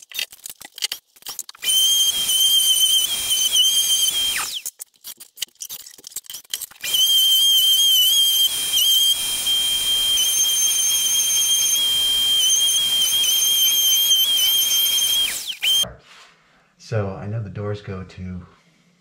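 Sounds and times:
orbital sander whining: 0:01.6 - 0:04.6, 0:06.8 - 0:15.8.

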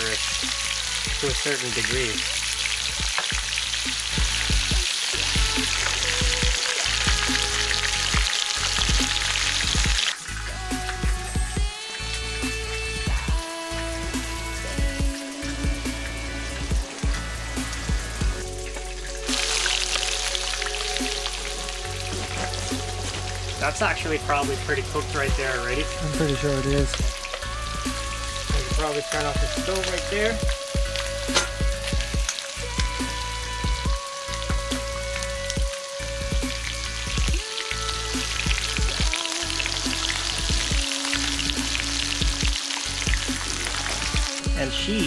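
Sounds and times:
background music with held notes: 0:00.0 - 0:45.0
fish frying in oil: 0:00.0 - 0:45.0.

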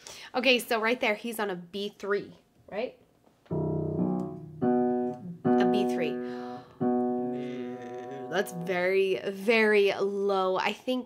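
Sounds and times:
piano notes ringing: 0:03.5 - 0:09.2.

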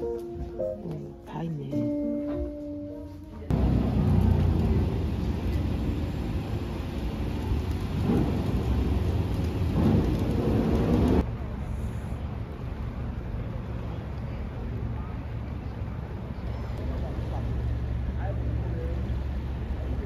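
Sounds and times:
outdoor background: 0:00.0 - 0:20.0
rumble of road vehicles: 0:00.0 - 0:20.0
engines pulling away: 0:03.5 - 0:20.0.

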